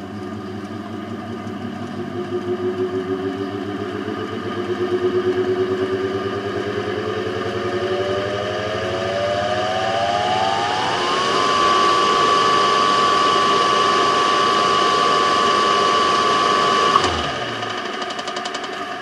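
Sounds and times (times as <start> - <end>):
electric motor whine: 0.0 - 18.5.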